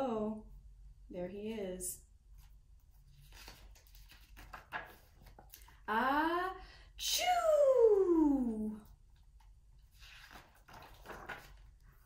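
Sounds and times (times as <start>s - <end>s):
book page turning: 2.4s - 5.7s, 9.4s - 12.0s.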